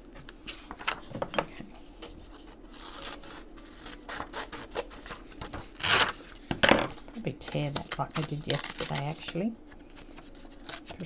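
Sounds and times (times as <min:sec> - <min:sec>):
paper rubbed and folded: 0:01.7 - 0:11.0
paper ripping: 0:02.0 - 0:11.0.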